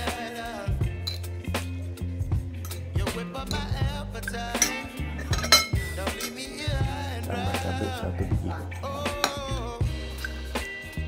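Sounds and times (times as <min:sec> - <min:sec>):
background music with bass line: 0:00.0 - 0:11.0
cutlery clinking on ceramic plate: 0:03.5 - 0:06.4, 0:09.1 - 0:09.5.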